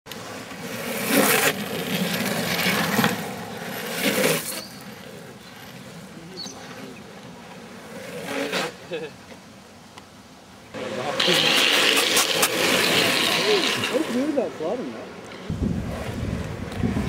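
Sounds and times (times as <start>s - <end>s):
skateboard wheels rolling rumble: 0.1s - 9.7s, 10.8s - 14.4s, 15.2s - 17.0s
skateboard wheels sliding on asphalt: 0.1s - 9.8s, 10.7s - 17.0s.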